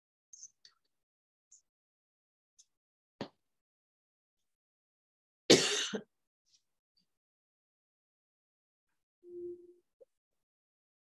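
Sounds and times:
person clearing throat: 5.5 - 6.1.

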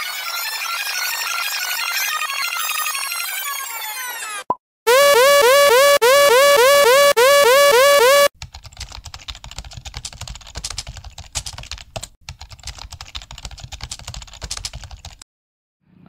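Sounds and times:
electronic tone gliding up: 4.9 - 8.3
computer keyboard typing: 8.4 - 15.2.

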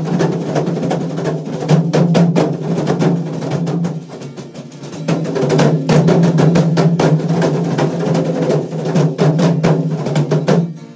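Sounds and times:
hand drum beating: 0.0 - 10.9.

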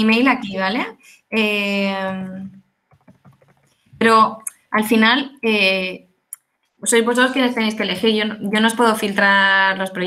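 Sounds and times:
woman saying eh: 0.0 - 2.6, 4.0 - 6.0, 6.8 - 10.0
typing on a computer keyboard: 2.9 - 3.7.

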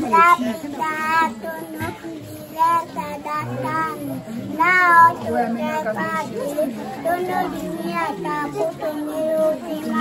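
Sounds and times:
girl reciting aloud: 0.0 - 10.0.

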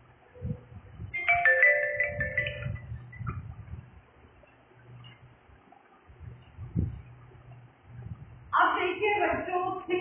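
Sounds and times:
phone alert chiming tune: 1.2 - 2.9.

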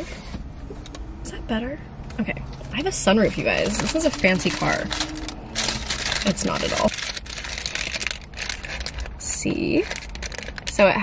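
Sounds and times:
paper wrapper crinkling: 3.5 - 10.8.

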